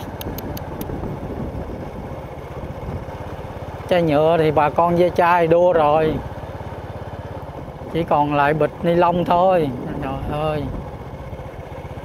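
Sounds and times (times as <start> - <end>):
wind and road hiss: 0.0 - 3.9
motorcycle engine running: 0.0 - 12.0.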